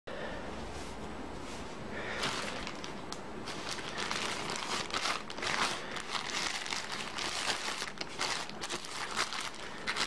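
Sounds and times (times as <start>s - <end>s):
plastic mailer bag crinkling: 2.2s - 10.0s.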